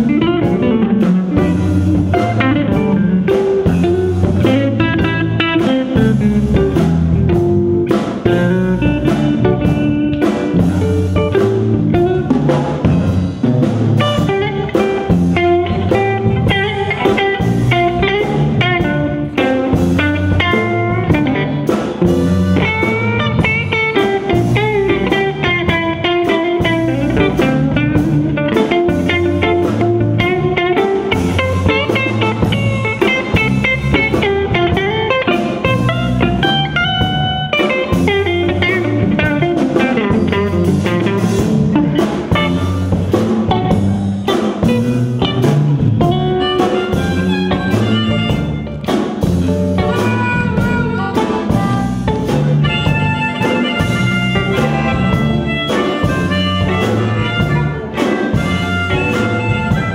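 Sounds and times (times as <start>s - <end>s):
drum kit: 0.0s - 59.9s
electric bass line: 0.0s - 59.9s
electric guitar lead solo: 0.0s - 59.9s.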